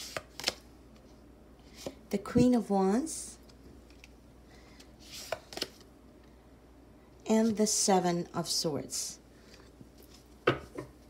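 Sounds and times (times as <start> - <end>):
cards rustling: 0.0 - 0.6, 4.8 - 5.8
faint steady hum: 0.0 - 11.0.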